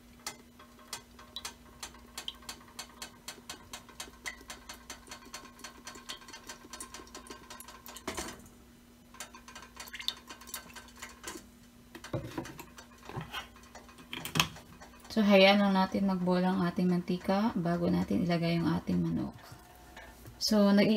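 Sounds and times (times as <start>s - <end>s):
rapid even ticking: 13.6s - 19.3s.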